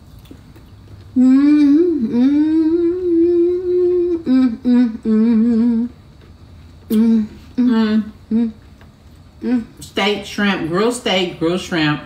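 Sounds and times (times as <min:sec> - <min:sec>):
person humming while eating: 0:01.1 - 0:06.1, 0:06.8 - 0:08.7, 0:09.4 - 0:09.8.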